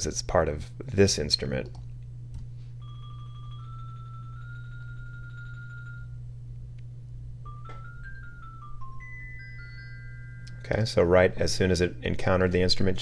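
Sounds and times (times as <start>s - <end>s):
steady low hum: 0.0s - 13.0s
xylophone notes: 7.4s - 10.8s.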